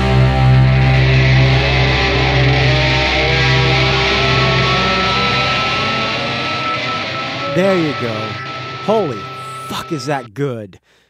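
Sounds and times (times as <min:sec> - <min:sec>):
rock music with guitar: 0:00.0 - 0:10.2.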